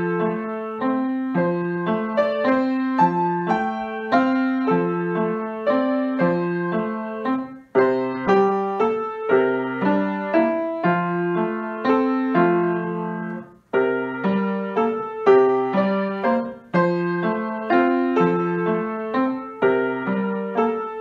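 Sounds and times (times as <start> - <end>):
grand piano melody: 0.0 - 21.0.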